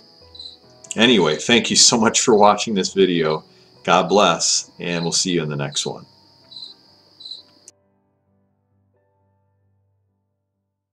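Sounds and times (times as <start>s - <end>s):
faint insect chirping: 0.0s - 7.7s
faint background music: 0.0s - 10.2s.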